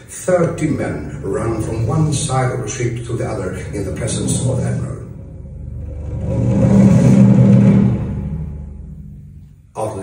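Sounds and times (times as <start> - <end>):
deep rumble: 0.0 - 9.8
steady low drone: 0.0 - 10.0.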